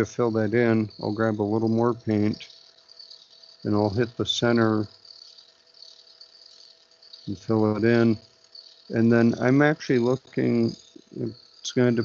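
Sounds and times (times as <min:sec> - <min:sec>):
machine spinning arrow shaft: 0:00.0 - 0:12.0
thin high hiss: 0:00.0 - 0:12.0.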